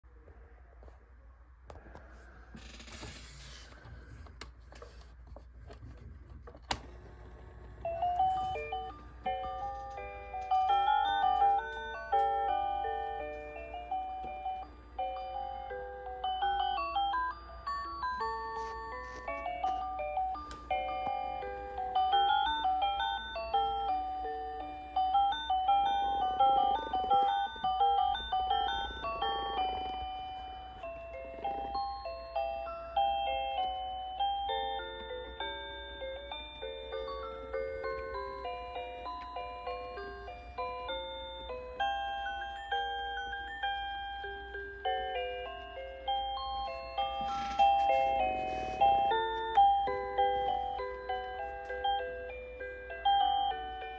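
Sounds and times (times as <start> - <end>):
low hum from toy: 1.8 - 53.9
toy music box notes: 7.8 - 53.9.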